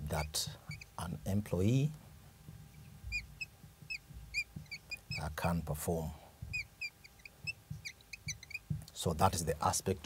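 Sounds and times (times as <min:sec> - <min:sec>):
faint room hum: 0:00.0 - 0:10.0
marker squeaking on whiteboard: 0:00.1 - 0:01.0, 0:03.0 - 0:05.4, 0:06.5 - 0:08.8.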